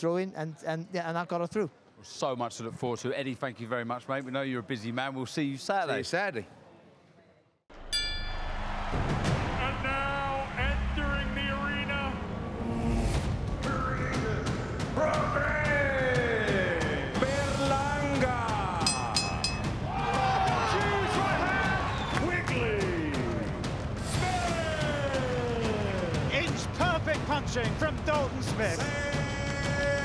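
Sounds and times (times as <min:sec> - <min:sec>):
ringing metallic hit: 0:07.8 - 0:08.8, 0:18.9 - 0:19.8.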